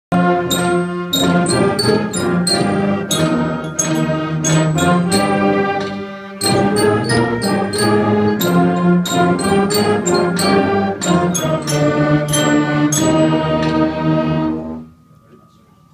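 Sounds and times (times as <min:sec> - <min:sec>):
concert band playing: 0:00.1 - 0:14.8.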